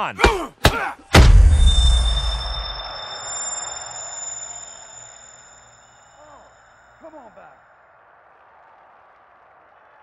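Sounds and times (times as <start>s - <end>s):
low boom: 1.2s - 3.0s
high-pitched ear ringing: 1.4s - 7.4s
muffled crowd: 2.3s - 10.0s.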